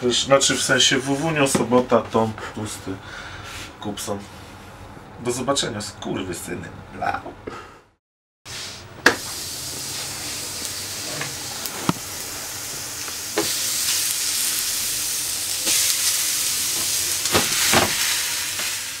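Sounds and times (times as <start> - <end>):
food sizzling in frying: 8.5 - 19.0.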